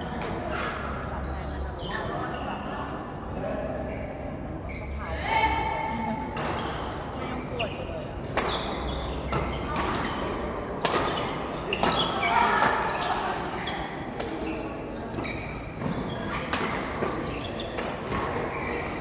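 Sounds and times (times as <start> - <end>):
rackets striking shuttlecock: 10.8 - 12.8.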